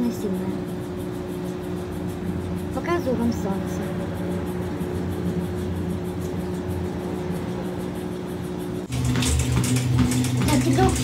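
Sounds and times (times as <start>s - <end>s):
treadmill motor humming: 0.0s - 11.0s.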